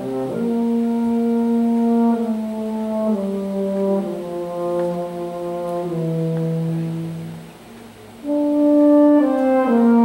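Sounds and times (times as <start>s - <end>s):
wind ensemble playing sustained chords: 0.0s - 10.0s.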